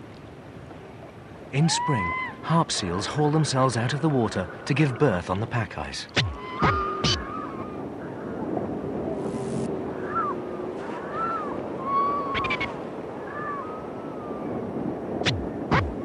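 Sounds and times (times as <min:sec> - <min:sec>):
seals calling: 0:01.5 - 0:05.2, 0:06.1 - 0:08.5, 0:09.4 - 0:16.0.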